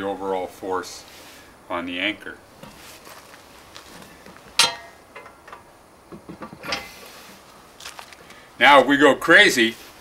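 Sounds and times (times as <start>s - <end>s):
short rustle: 2.6s - 4.6s
sharp metallic clink: 4.6s - 5.0s.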